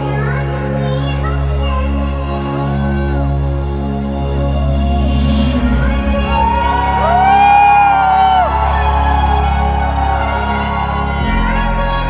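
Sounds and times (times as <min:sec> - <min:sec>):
electronic dance music: 0:04.6 - 0:12.0
crowd whooping: 0:05.9 - 0:12.0.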